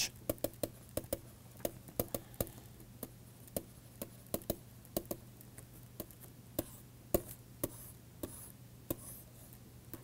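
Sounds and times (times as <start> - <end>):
stylus tapping on pen tablet: 0.2 - 9.1.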